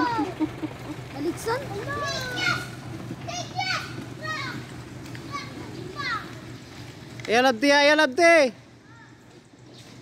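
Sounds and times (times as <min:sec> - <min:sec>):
children calling: 0:00.0 - 0:07.0
low hum: 0:00.0 - 0:07.0.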